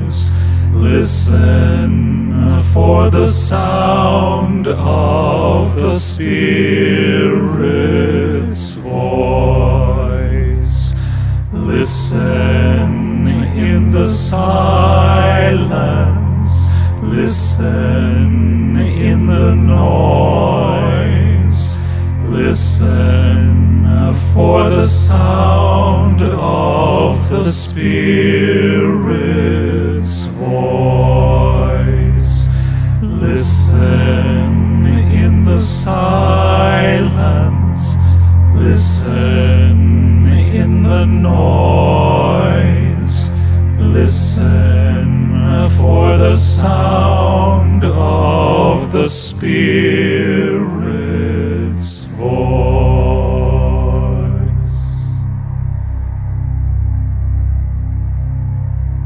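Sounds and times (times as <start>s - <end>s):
low sustained drone: 0.0s - 59.0s
voices holding a low chord: 0.0s - 59.0s
breathy hiss: 10.8s - 12.1s, 32.3s - 33.1s.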